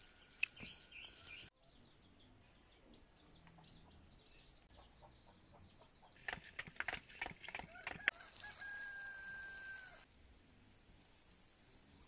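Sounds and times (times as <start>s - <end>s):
rooster crowing: 7.6s - 10.1s.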